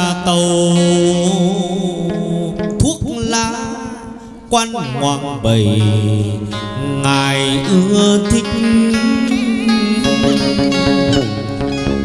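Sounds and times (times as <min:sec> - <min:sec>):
voice holding gliding notes: 0:04.8 - 0:12.0
plucked strings: 0:04.9 - 0:12.0.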